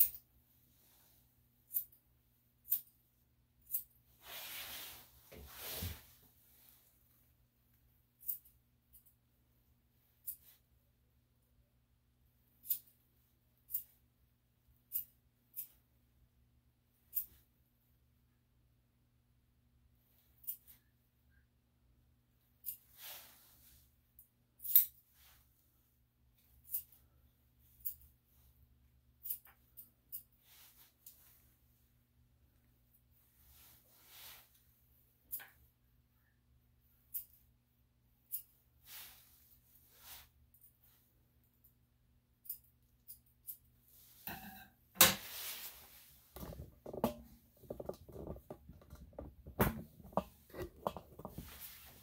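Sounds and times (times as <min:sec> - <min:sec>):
soft rustles: 0:04.1 - 0:07.3, 0:38.4 - 0:41.1, 0:45.2 - 0:52.0.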